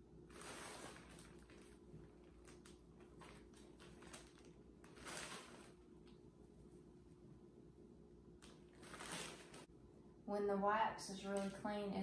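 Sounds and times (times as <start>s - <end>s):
plastic bag crinkles: 0.3s - 6.1s, 8.4s - 9.7s
plastic bag rustling: 0.3s - 6.1s, 8.4s - 9.7s.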